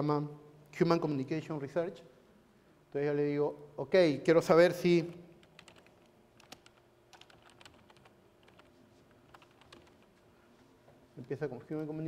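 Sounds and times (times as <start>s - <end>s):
typing on computer keyboard: 5.4s - 8.7s, 9.3s - 10.1s.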